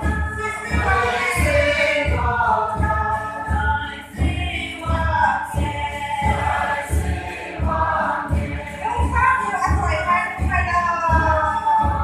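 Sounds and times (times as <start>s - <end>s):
group of voices singing in chorus: 0.0s - 9.8s, 11.1s - 12.0s
steady low beat: 0.0s - 12.0s.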